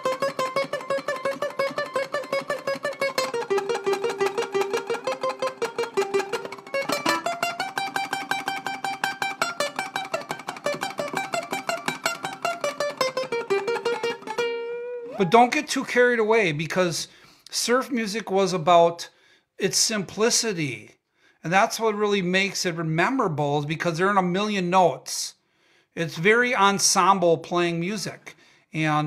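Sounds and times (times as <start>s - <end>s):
ukulele tremolo picking: 0.0s - 15.8s.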